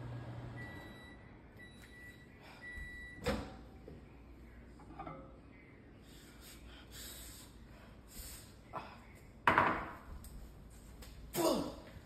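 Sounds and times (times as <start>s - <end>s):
microwave oven humming: 0.0s - 4.3s.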